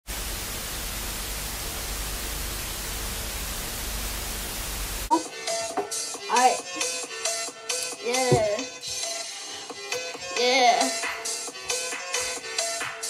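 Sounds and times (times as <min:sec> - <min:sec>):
television static hiss: 0:00.1 - 0:06.5
music: 0:05.1 - 0:13.0.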